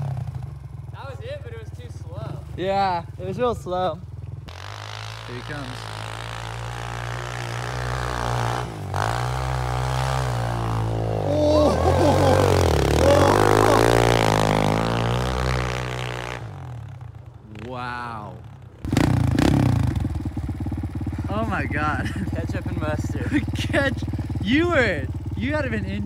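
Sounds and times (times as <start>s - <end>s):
motorbike engine revving: 0.0s - 26.0s.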